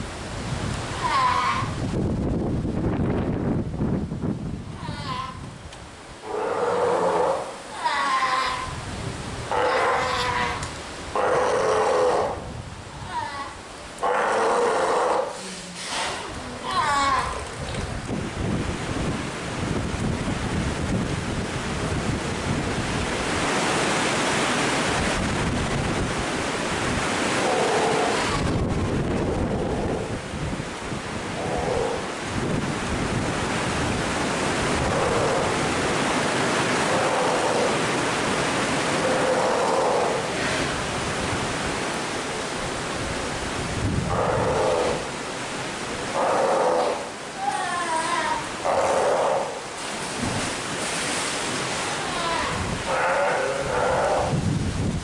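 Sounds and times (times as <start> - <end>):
sea lion pup bleating: 1.0 - 1.8, 4.8 - 5.4, 6.4 - 8.7, 9.5 - 12.4, 13.0 - 17.4, 46.2 - 49.6, 52.1 - 54.3
splashing water: 44.3 - 53.6.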